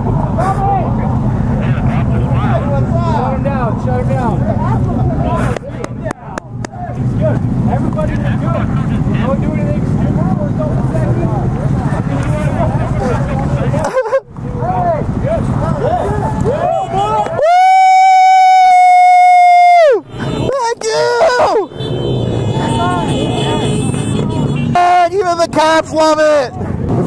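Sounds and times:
motorcycles idling: 0.0 - 17.4, 19.5 - 26.8
crowd of voices: 0.0 - 27.0.

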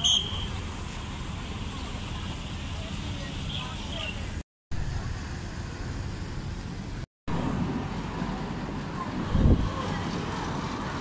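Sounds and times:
road traffic noise: 0.0 - 11.0
faint voices: 8.0 - 11.0.

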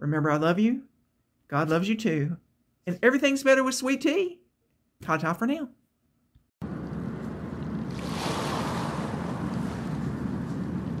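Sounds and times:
low rumble: 6.6 - 11.0
rushing wash of noise: 6.6 - 11.0.

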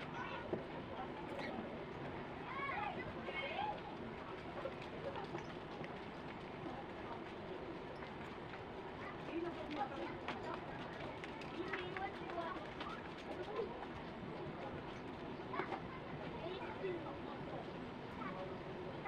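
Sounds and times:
faint distant voices: 0.0 - 19.0
steady background noise: 0.0 - 19.0.

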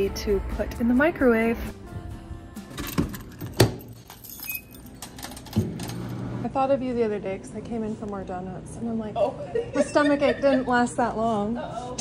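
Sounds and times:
keys jangling: 2.7 - 6.1.

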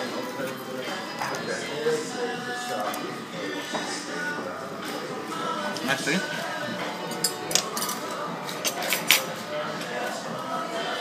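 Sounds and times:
background music: 0.0 - 11.0
cutlery and crockery clinking: 7.0 - 10.0.

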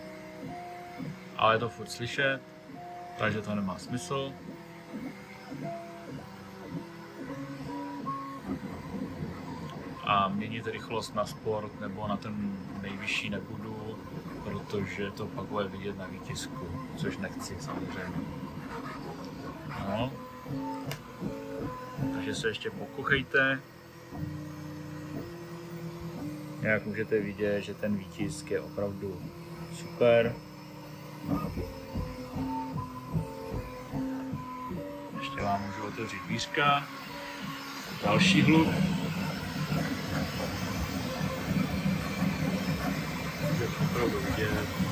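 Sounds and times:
printer stepper motors tones: 0.0 - 44.9.

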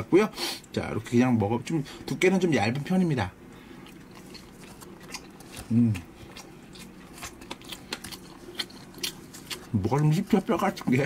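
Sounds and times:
chewing with mouth clicks: 3.4 - 11.0
crunching bites: 3.9 - 11.0.

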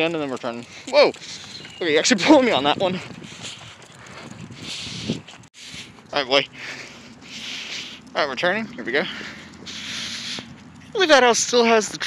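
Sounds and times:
footsteps on pavement: 0.0 - 12.0
small dog's footsteps: 0.0 - 12.0.

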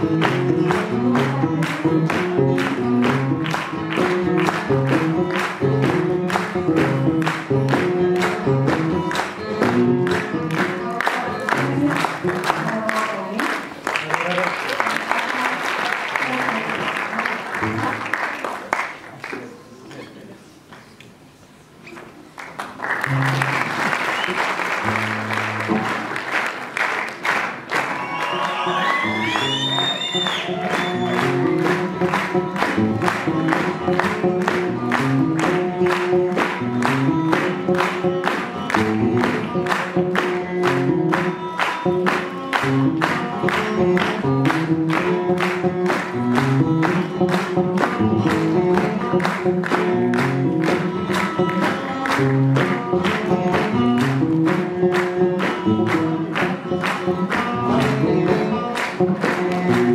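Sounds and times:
music with steady beat and bass: 0.0 - 12.6
applause: 0.0 - 19.6, 22.3 - 59.9.

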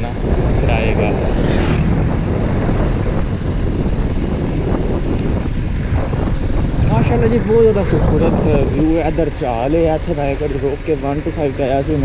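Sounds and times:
motorcycle engine running: 0.0 - 12.0
wind noise on microphone: 0.0 - 12.0.

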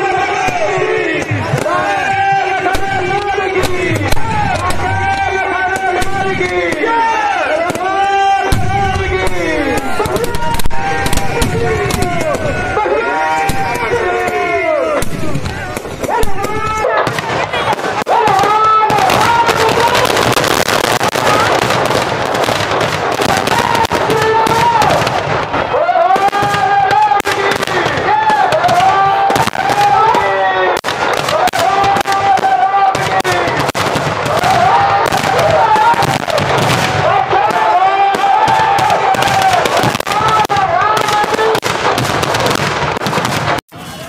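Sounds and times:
fireworks crackling and popping: 0.0 - 44.0.

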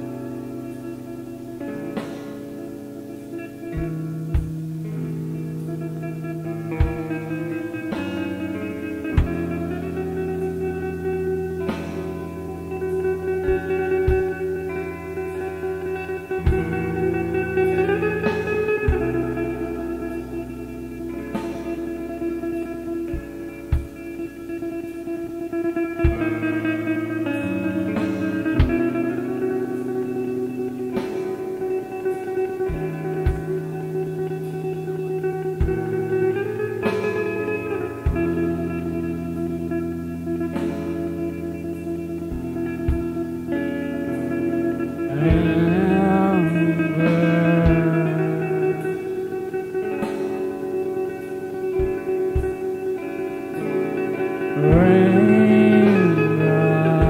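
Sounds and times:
ringing guitar chords: 0.0 - 57.0
held bass notes: 2.6 - 57.0.

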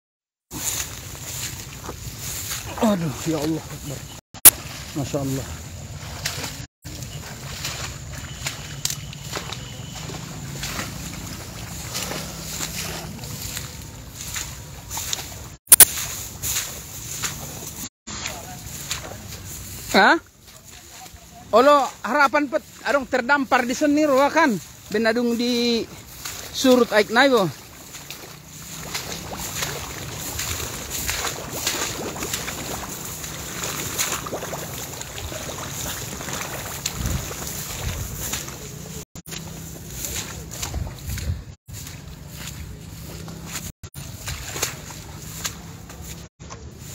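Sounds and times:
tall grass rustling against phone: 0.5 - 5.2, 6.9 - 46.9
wind on microphone: 36.7 - 38.6, 40.6 - 41.6.

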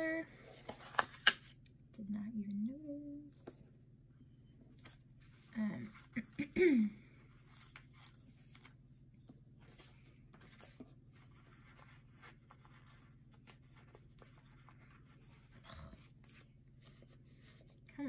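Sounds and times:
low steady hum: 0.0 - 18.0
paper sticker sheets rustling: 7.2 - 9.0, 9.6 - 18.0.

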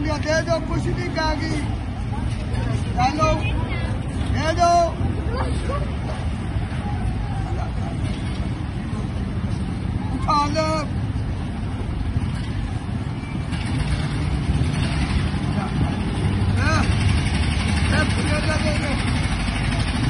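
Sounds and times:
vehicle engine rumbling: 0.0 - 20.0.

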